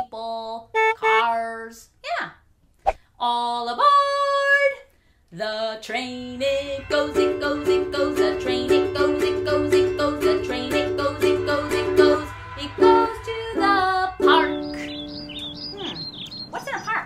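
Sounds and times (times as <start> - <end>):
held sung notes: 0.8 - 1.4, 6.1 - 16.0
ukulele strumming chords: 6.5 - 15.0.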